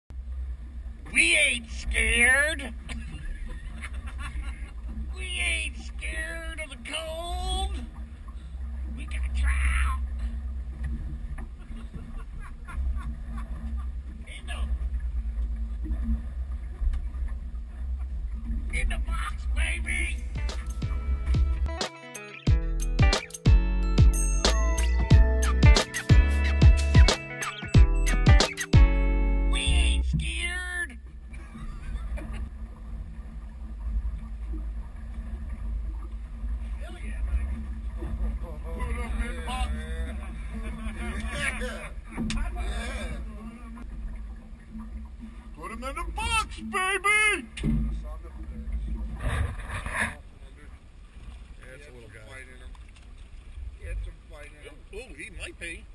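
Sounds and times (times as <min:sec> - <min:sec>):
water lapping at boat hull: 0:00.2 - 0:21.7, 0:30.1 - 0:55.2
faint steady hum: 0:00.2 - 0:21.8
men's voices: 0:38.4 - 0:43.6.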